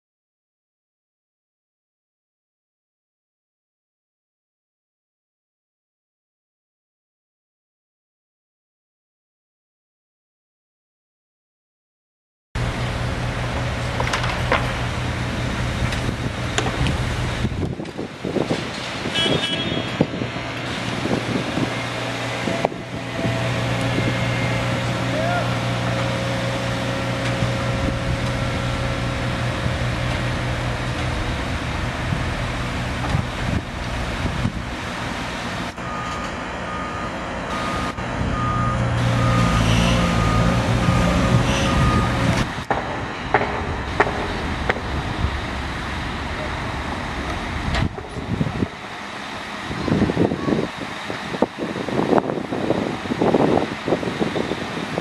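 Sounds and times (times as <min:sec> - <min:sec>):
diesel engine running: 0:12.6 - 0:55.0
machinery clanks and knocks: 0:13.4 - 0:19.1, 0:27.0 - 0:34.9, 0:38.9 - 0:49.5
warning beep: 0:35.8 - 0:42.2.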